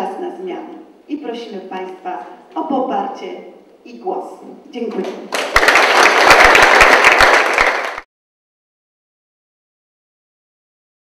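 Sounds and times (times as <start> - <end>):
audience applause: 5.3 - 8.1.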